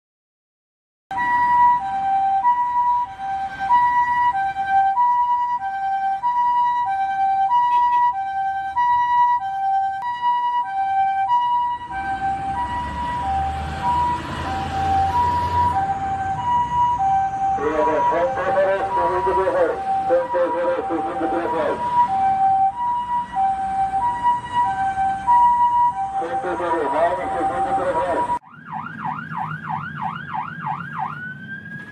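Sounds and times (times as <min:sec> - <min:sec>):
low traffic rumble: 0:01.1 - 0:31.9
two-tone ambulance siren: 0:01.1 - 0:31.9.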